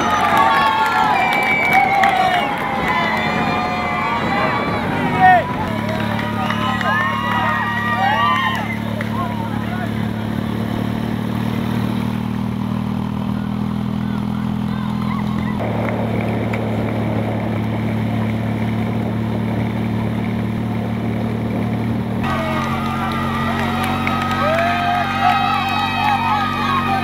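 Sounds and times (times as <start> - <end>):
motorcycle engine running: 0.0 - 27.0
wind and road noise: 0.0 - 27.0.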